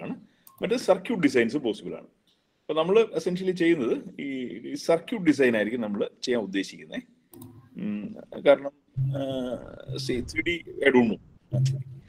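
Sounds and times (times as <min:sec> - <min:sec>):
man speaking indistinctly: 0:07.7 - 0:11.3.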